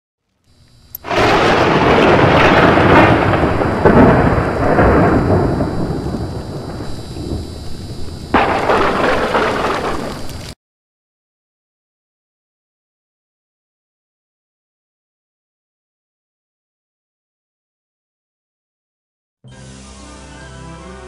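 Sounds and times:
rain: 1.0 - 10.6
thunder rumbling: 1.0 - 10.6
thunderclap: 1.0 - 10.6.

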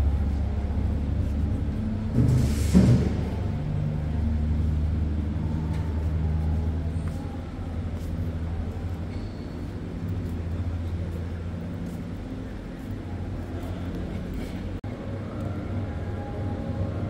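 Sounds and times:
low hum of hangar: 0.0 - 17.0.

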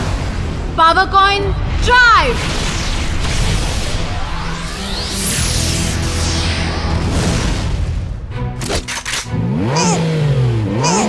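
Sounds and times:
cartoon race car engine revving: 9.5 - 11.0.

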